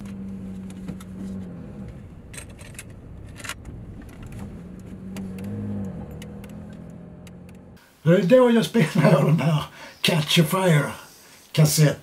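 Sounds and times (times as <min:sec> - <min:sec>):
car engine running inside cabin: 0:00.0 - 0:07.8
sharp clicks: 0:02.7 - 0:07.6.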